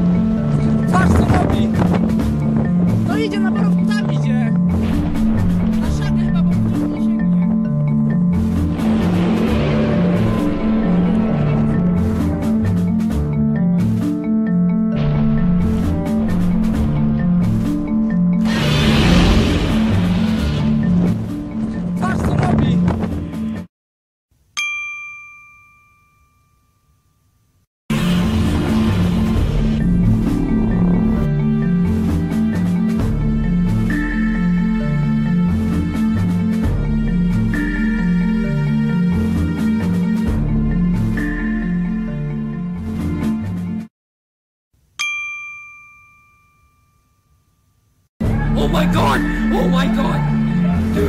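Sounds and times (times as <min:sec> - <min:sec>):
background music with bass line: 0:00.0 - 0:23.7, 0:27.9 - 0:43.9
bell-like ding: 0:24.6 - 0:27.4, 0:45.0 - 0:47.8.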